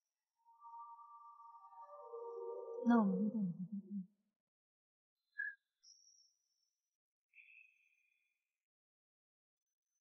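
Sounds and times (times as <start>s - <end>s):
music of long held notes: 0.4s - 3.9s
woman speaking: 2.8s - 4.0s.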